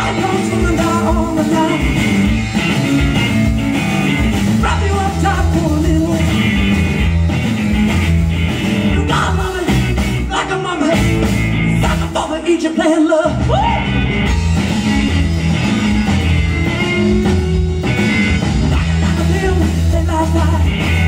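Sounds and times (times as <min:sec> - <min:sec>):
drum kit: 0:00.0 - 0:21.0
electric guitar: 0:00.0 - 0:21.0.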